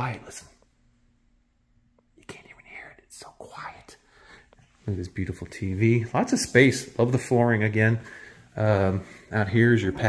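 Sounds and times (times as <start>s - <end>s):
person whispering: 0.0s - 0.6s, 2.0s - 8.0s.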